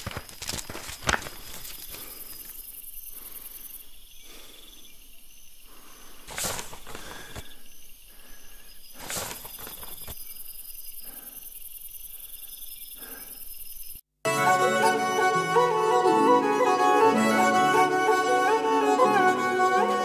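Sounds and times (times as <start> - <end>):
crickets chirping: 0.0 - 14.1
rustling swishes: 6.3 - 7.0, 9.0 - 10.0.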